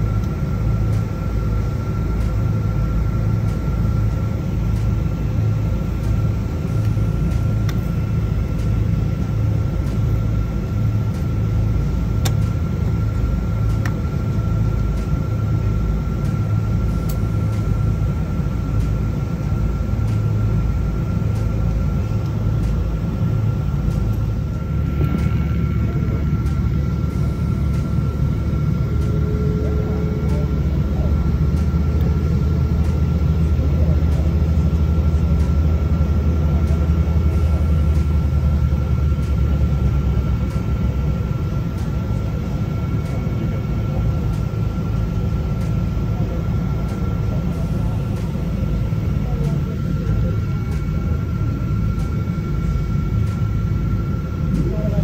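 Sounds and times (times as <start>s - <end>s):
jet engines rumbling: 0.0s - 55.0s
thin steady whine: 0.0s - 55.0s.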